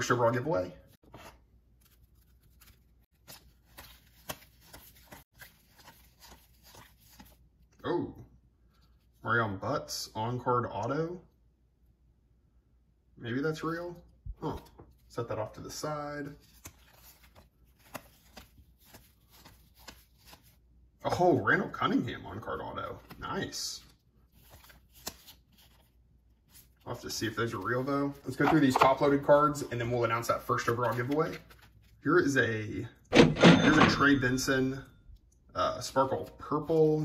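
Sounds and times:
paper cards flicking and sliding: 0:01.0 - 0:07.4, 0:16.4 - 0:20.6, 0:24.3 - 0:25.9.

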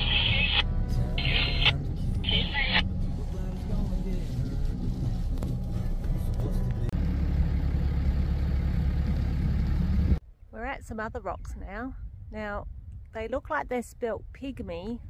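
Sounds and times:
background music: 0:00.0 - 0:07.0
truck engine rumble: 0:00.0 - 0:10.8.

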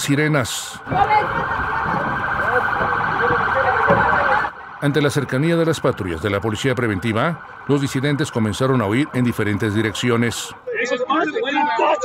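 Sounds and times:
police sirens warbling: 0:00.0 - 0:12.0.

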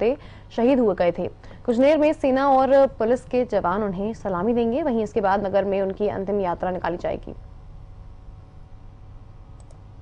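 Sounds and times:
faint clicks: 0:09.6 - 0:09.8.

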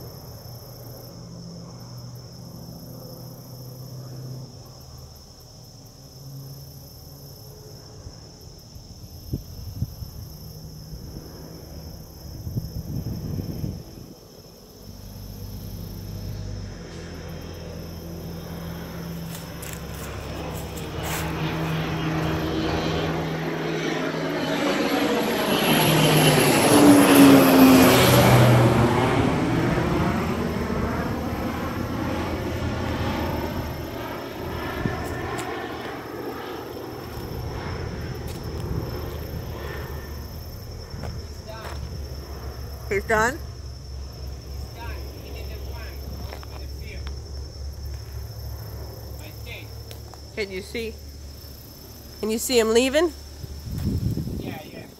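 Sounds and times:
airplane passing low overhead: 0:00.0 - 0:54.9.

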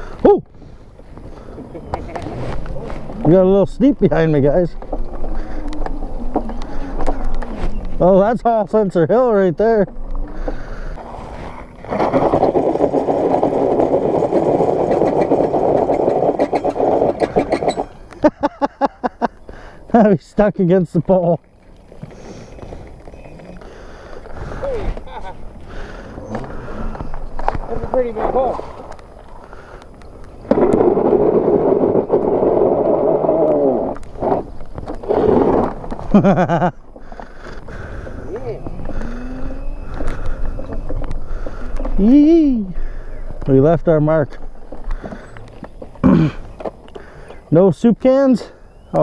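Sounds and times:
wheel spinning in gravel: 0:02.0 - 0:18.1, 0:19.9 - 0:36.8
mini bike revving: 0:09.9 - 0:18.0, 0:30.5 - 0:36.6, 0:38.2 - 0:42.2
people laughing: 0:18.1 - 0:19.7, 0:24.5 - 0:25.6, 0:36.0 - 0:36.8.

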